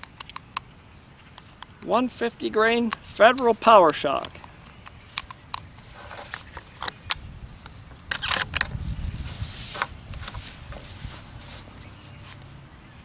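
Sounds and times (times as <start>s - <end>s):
metallic clacks of rifle bolt: 0.0s - 0.7s, 2.8s - 8.7s
small rifle clicks: 0.0s - 0.7s, 2.8s - 7.2s
low rustling: 5.7s - 12.7s.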